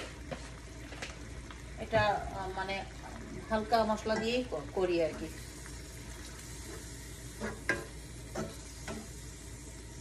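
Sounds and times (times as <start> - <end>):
frying sizzle: 0.0 - 10.0
spatula scraping a frying pan: 6.4 - 9.3.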